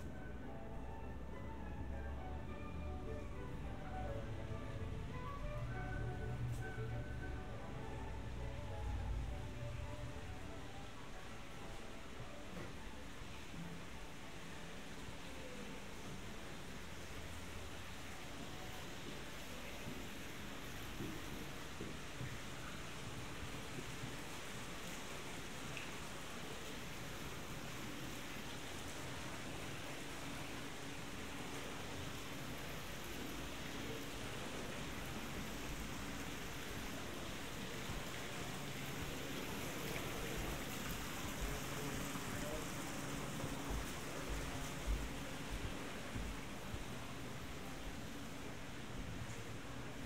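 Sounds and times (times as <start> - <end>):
fountain water splashing: 13.4 - 50.0.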